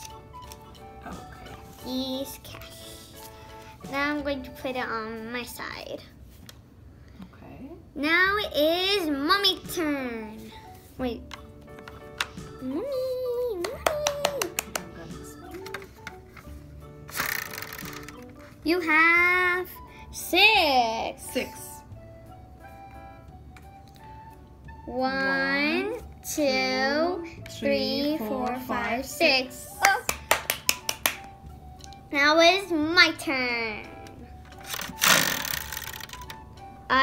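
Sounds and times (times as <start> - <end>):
faint background music: 0.0 - 37.0.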